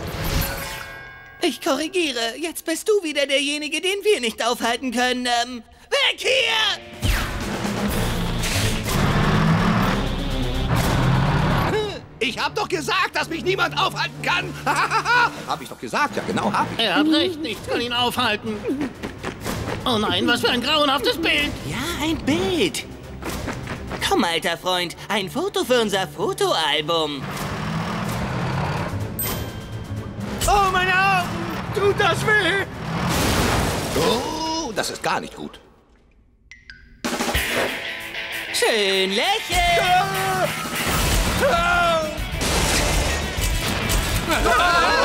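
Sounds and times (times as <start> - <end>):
action music: 6.7 - 34.0, 36.5 - 45.0
rumbling crashing effect: 32.7 - 34.0.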